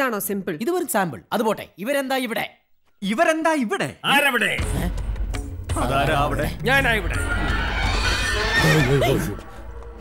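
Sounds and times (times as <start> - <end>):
music: 4.2 - 10.0
horse neighing: 7.0 - 9.6.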